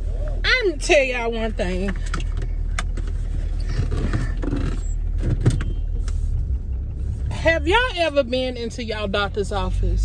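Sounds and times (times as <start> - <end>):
car idling low rumble: 0.0 - 10.0.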